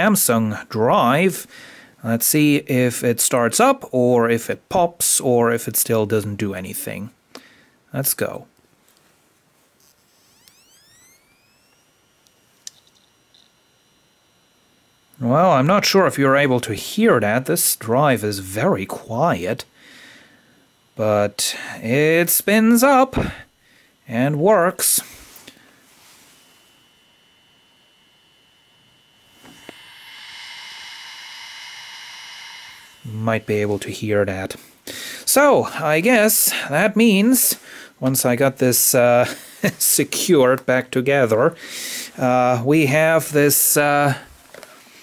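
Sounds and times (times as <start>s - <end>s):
soft hiss: 6.9s - 15.4s, 18.8s - 45.0s
hard disk drive spinning up: 9.8s - 15.2s, 24.8s - 34.7s.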